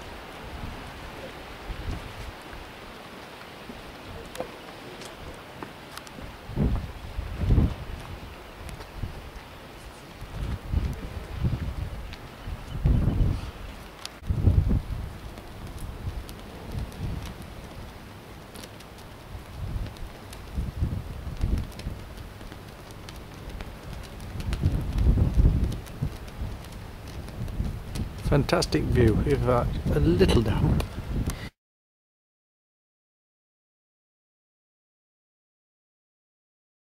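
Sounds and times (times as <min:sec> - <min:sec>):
wind buffeting microphone: 0:00.0 - 0:31.5.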